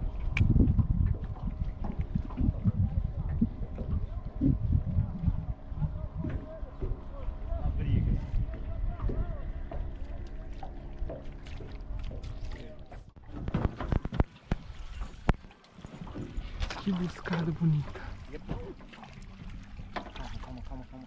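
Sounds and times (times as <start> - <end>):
steady hum: 0.0 - 21.0.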